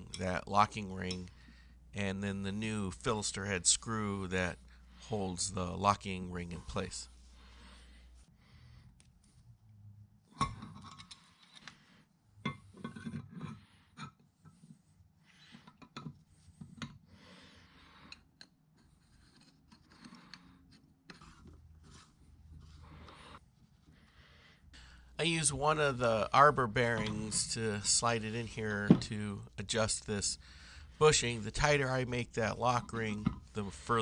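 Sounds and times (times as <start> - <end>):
soft rubbing and scraping: 2.0 - 8.4, 11.0 - 18.2, 18.8 - 24.3, 25.2 - 34.0.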